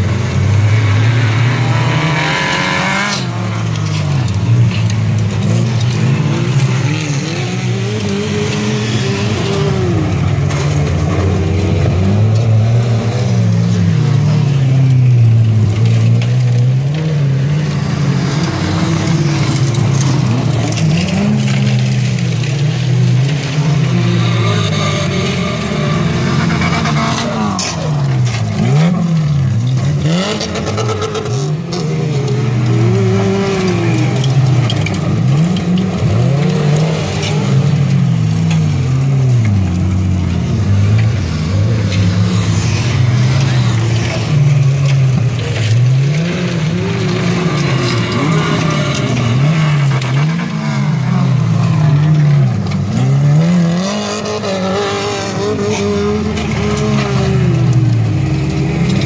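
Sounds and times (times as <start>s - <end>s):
cars passing close by: 0.0s - 59.0s
stock car engines racing: 0.0s - 59.0s.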